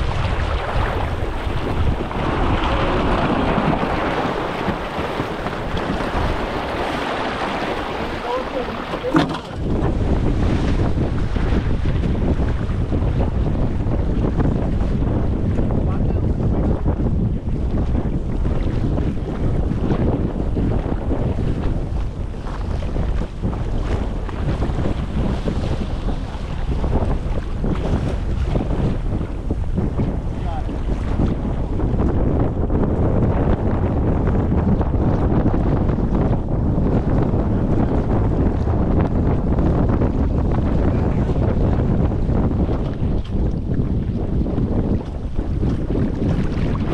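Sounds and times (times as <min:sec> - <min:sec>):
waves splashing: 0:00.0 - 0:12.4, 0:21.6 - 0:31.6, 0:45.4 - 0:46.9
wind buffeting microphone: 0:00.0 - 0:46.9.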